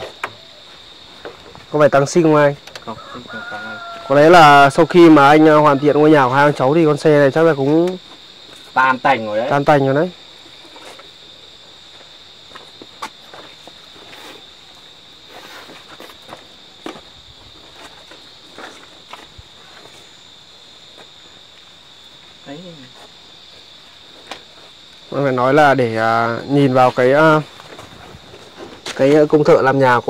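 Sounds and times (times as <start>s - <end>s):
high-pitched insect chorus: 0.0s - 30.0s.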